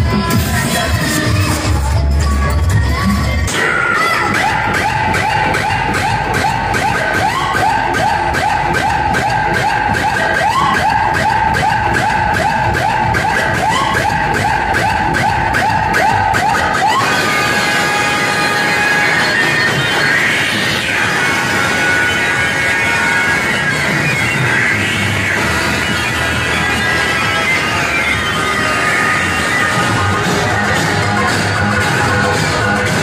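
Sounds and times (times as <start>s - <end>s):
loud dance music with fast beat: 0.0s - 33.0s.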